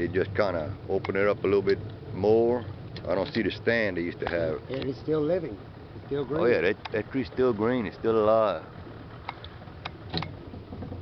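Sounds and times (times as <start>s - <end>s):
boat motor running: 0.0s - 11.0s.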